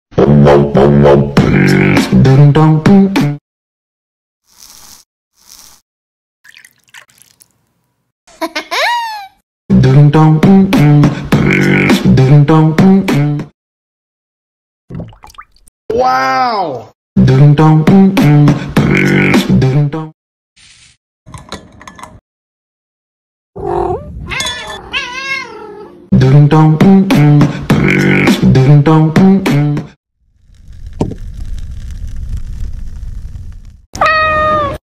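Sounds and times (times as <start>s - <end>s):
faint water drips: 6.4s - 7.7s
cat meowing: 23.6s - 26.0s, 34.0s - 34.8s.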